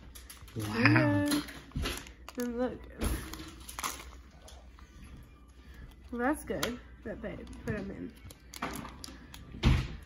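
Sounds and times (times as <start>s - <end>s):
plastic packages clicking and rustling: 0.0s - 4.9s, 7.4s - 10.0s.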